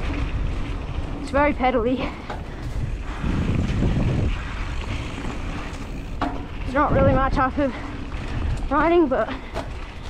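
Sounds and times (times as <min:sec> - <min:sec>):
bike tyres rolling on dirt: 0:00.0 - 0:10.0
wind rumbling on microphone: 0:00.0 - 0:10.0.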